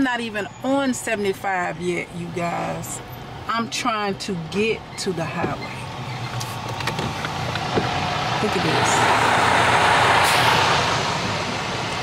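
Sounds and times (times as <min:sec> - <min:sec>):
road and traffic noise inside car: 0:00.0 - 0:12.0
truck passing alongside: 0:00.0 - 0:12.0.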